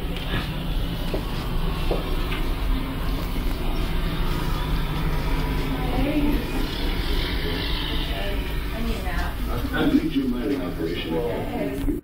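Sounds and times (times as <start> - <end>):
low rumble of background noise: 0.0 - 12.0.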